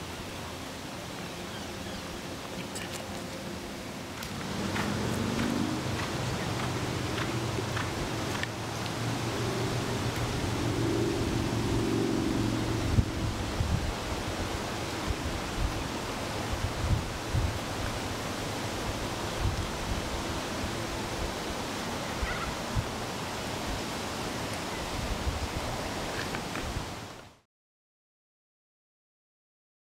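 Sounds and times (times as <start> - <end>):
low hum: 1.9 - 14.0
wind on microphone: 4.3 - 24.0, 24.8 - 27.1.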